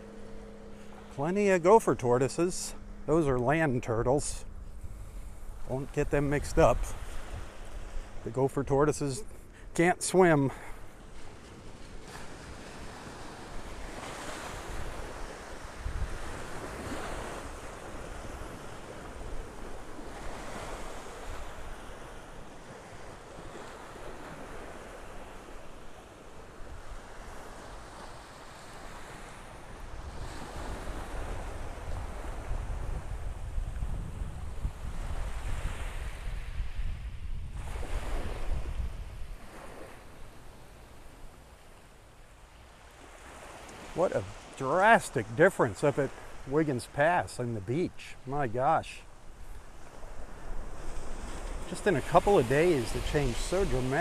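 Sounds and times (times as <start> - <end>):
wind buffeting microphone: 0.0 - 9.4, 10.8 - 22.1, 29.8 - 39.9
small waves washing on shore: 0.0 - 54.0.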